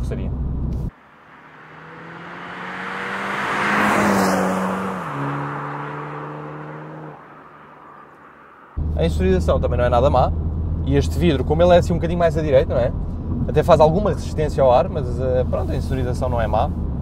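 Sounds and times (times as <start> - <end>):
car driving past: 0.9 - 9.2.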